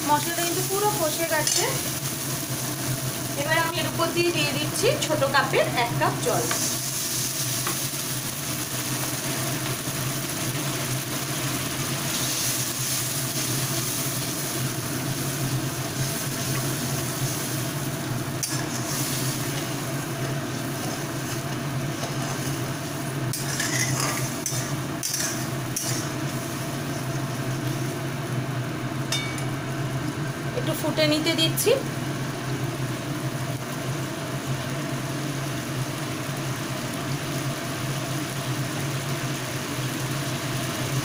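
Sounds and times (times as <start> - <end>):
gravy sizzling and bubbling: 0.0 - 41.0.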